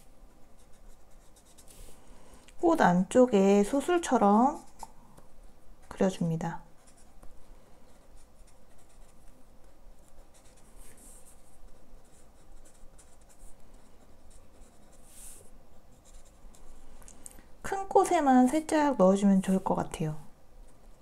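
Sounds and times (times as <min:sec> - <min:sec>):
marker scratching on paper: 0:00.3 - 0:02.0, 0:03.7 - 0:04.9, 0:05.8 - 0:07.3, 0:07.9 - 0:16.8.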